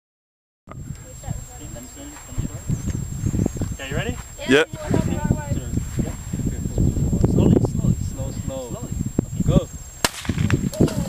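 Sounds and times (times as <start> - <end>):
grenade fuse popping: 10.0 - 11.0.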